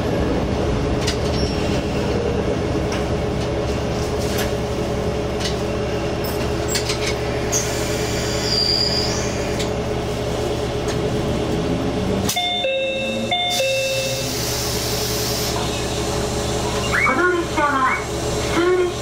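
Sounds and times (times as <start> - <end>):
diesel engine humming: 0.0 - 19.0.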